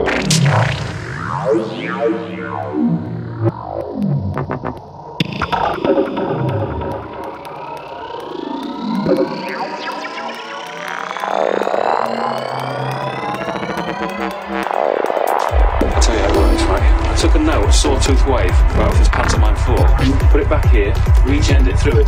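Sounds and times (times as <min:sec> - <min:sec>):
pulsing low bass line: 0:00.0 - 0:22.0
synthesizer sweeps: 0:00.0 - 0:22.0.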